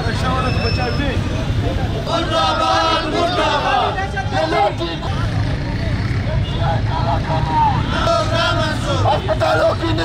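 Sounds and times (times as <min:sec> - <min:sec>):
crowd babble: 0:00.0 - 0:10.0
men calling out: 0:01.8 - 0:10.0.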